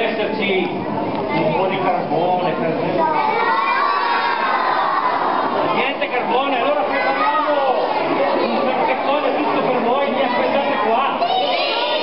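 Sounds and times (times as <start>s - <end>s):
children shouting and cheering: 3.0s - 5.8s, 6.7s - 12.0s.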